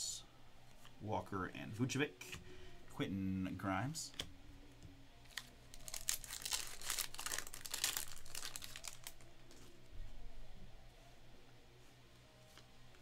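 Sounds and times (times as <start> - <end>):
foil wrapper crinkling and tearing: 5.3 - 9.6.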